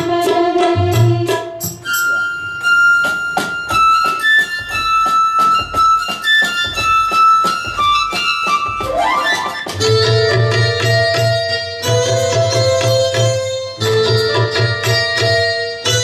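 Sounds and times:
hand percussion strikes: 0.0 - 16.0.

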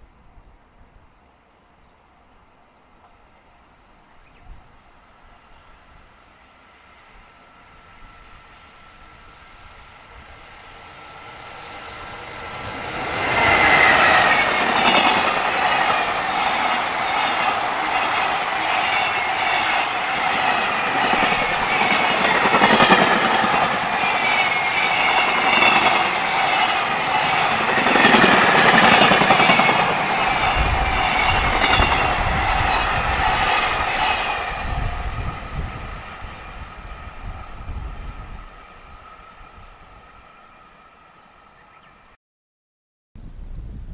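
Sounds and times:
freight train passing: 1.2 - 42.2
rhythmic wheel clatter on rails: 10.6 - 36.0.

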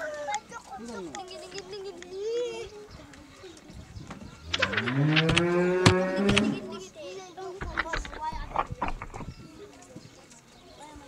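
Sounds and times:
sharp clicks: 4.5 - 6.6
cow mooing: 4.8 - 6.5.

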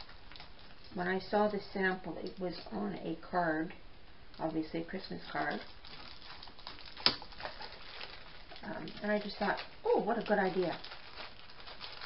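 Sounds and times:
paper and card rustling: 5.1 - 12.0.

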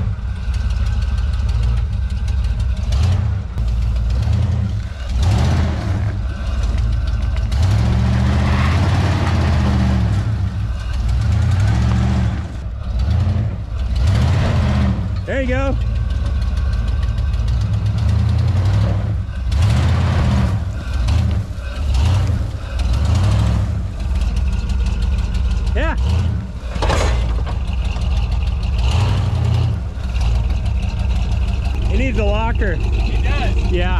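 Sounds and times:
truck engine revving: 0.0 - 33.9
tyres scrabbling in loose dirt: 0.1 - 33.9.

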